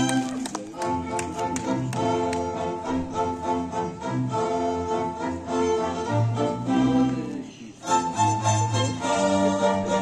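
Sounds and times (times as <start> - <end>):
string ensemble playing: 0.0 - 10.0.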